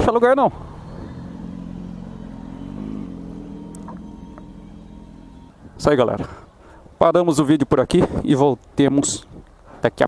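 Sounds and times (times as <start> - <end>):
motorcycle engine at low revs: 0.0 - 5.9.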